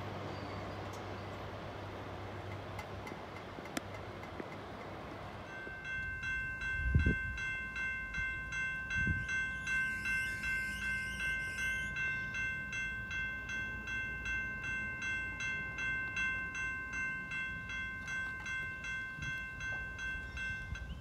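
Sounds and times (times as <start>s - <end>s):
crossing warning bell ringing: 5.3s - 21.0s.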